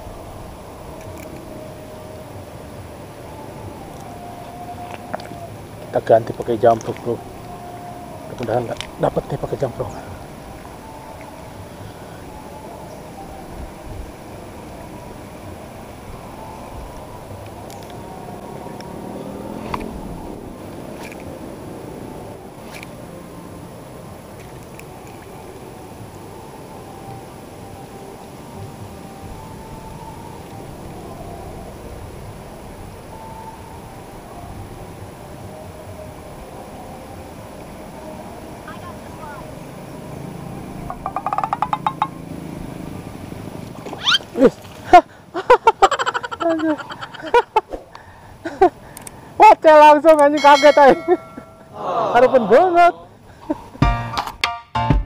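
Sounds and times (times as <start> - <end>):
rapid ticks: 40.9 - 42.2.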